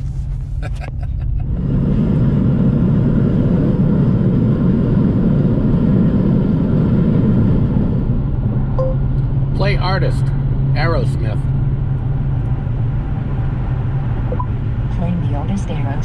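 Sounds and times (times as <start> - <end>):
car engine drone: 0.0 - 16.0
short electronic beep: 8.8 - 9.2.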